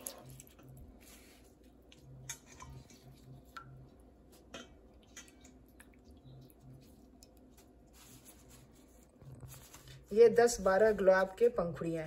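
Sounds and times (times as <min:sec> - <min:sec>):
hands squishing wet petals: 0:00.0 - 0:11.7.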